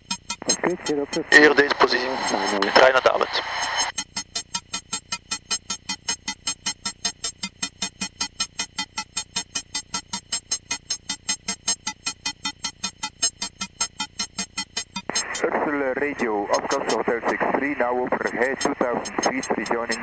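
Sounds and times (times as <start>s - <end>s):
rapid high-pitched warning beeps: 0.0s - 20.0s.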